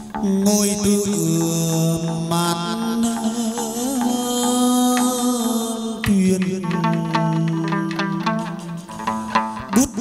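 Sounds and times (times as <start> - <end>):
plucked-string and percussion ensemble: 0.0 - 10.0.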